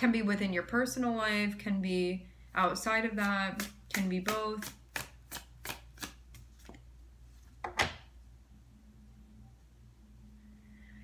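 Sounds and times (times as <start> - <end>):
cards shuffled slapping: 3.2 - 6.9.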